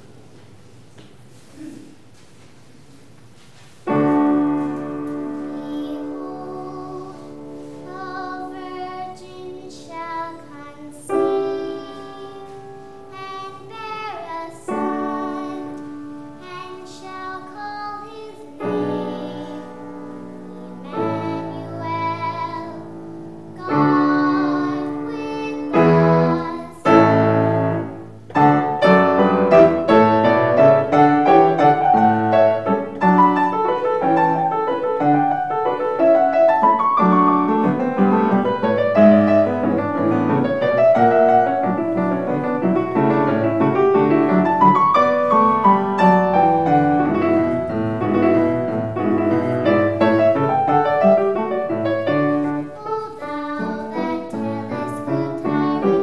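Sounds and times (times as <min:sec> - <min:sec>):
piano accompaniment: 0:03.8 - 0:56.0
girl singing: 0:04.0 - 0:27.6, 0:48.9 - 0:56.0.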